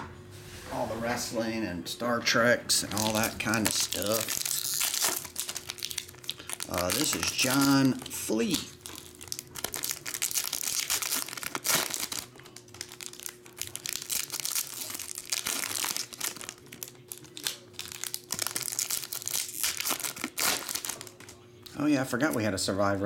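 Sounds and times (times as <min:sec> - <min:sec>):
foil wrapper crinkling: 0:02.9 - 0:21.4.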